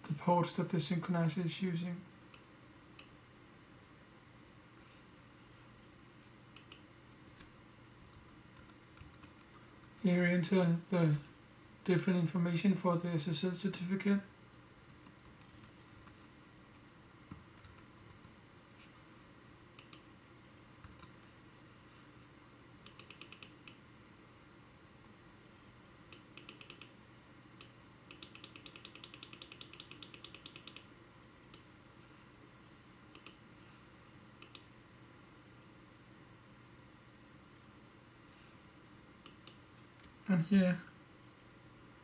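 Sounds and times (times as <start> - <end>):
typing on computer keyboard: 8.0 - 10.0, 14.9 - 16.3, 17.2 - 18.4, 20.8 - 21.1, 22.9 - 23.7, 26.4 - 26.9, 28.1 - 30.9.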